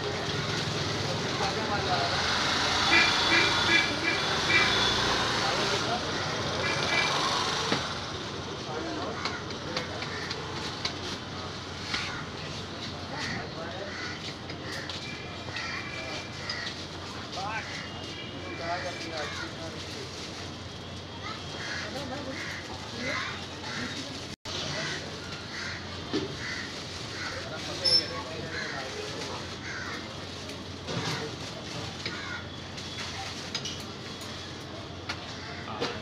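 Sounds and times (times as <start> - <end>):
busy street noise: 0.0 - 36.0
crow cawing: 9.1 - 10.4, 13.2 - 14.9, 15.5 - 16.8, 21.3 - 24.0, 24.7 - 27.5, 28.4 - 28.9, 29.6 - 30.1, 32.0 - 32.6, 35.3 - 35.8.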